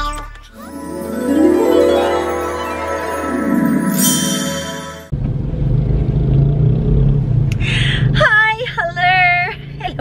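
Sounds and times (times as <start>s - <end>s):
chiming intro jingle: 0.6s - 5.1s
car engine and road rumble: 5.1s - 10.0s.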